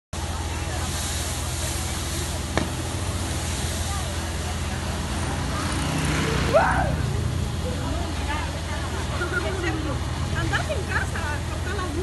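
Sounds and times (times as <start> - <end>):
steady low rumble: 0.2 - 12.0
person crying out: 6.5 - 7.0.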